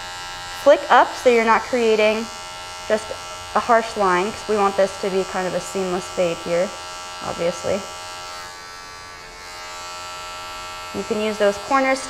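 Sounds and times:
electric hair clipper buzzing: 0.0 - 12.0.

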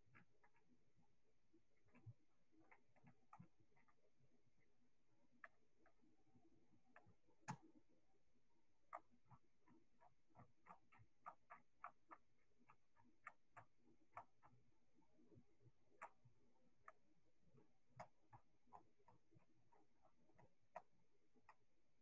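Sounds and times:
faint irregular clicks: 0.0 - 22.0.

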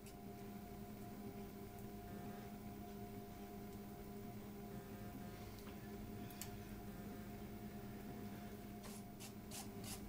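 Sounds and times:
potter's wheel low hum: 0.0 - 10.0.

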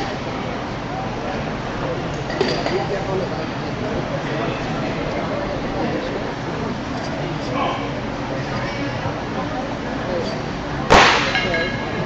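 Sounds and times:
metal clanging on barbell: 11.2 - 12.0.

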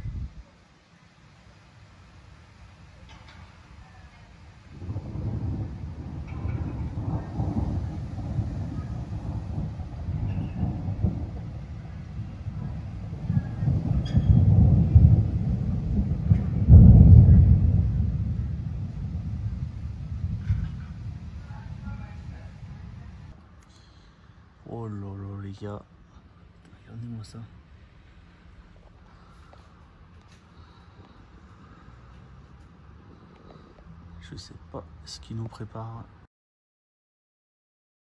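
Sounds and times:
rolling thunder: 0.0 - 0.4, 4.6 - 23.4.

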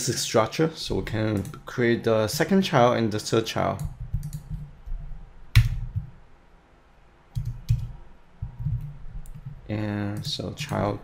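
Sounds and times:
computer keyboard clicks: 3.8 - 4.6, 7.4 - 7.9.

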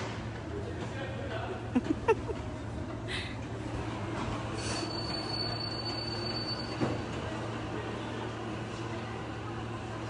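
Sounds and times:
bumper car squealing: 4.5 - 7.1.

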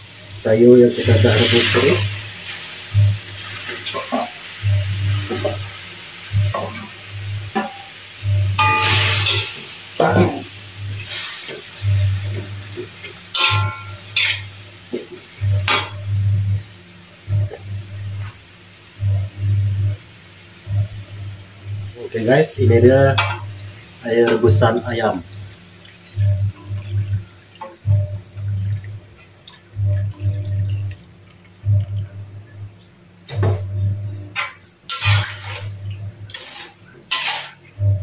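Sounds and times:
oil sizzling: 0.0 - 38.0
metal spatula scraping a wok: 8.6 - 9.6, 13.4 - 14.5, 34.4 - 37.7.

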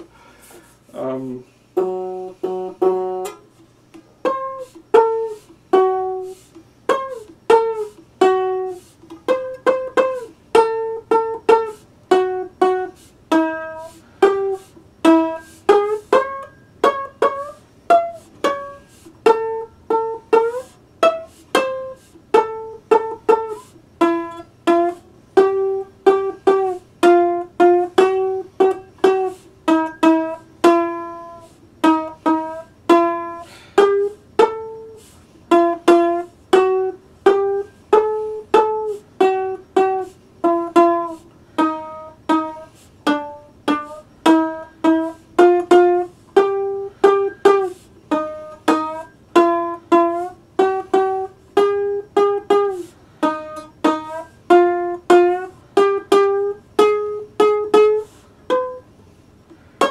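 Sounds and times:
one-string slide instrument notes: 1.0 - 59.9.

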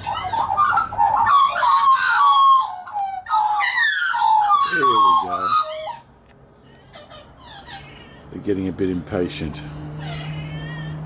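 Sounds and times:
harsh squawks: 0.0 - 8.5, 10.0 - 11.0
magpies warbling chorus: 0.0 - 9.0, 9.9 - 11.0.

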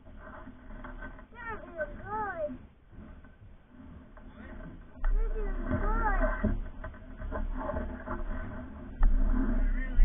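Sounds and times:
skate wheels rolling: 0.0 - 10.0.

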